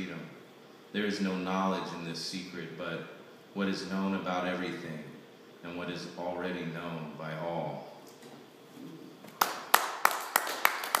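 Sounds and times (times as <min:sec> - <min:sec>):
hand clapping: 0:09.3 - 0:11.0.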